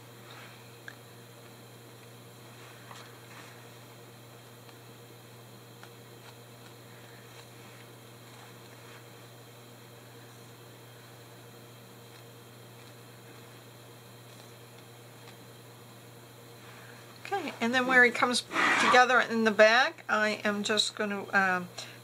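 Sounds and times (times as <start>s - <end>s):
electrical hum and hiss: 0.0s - 22.0s.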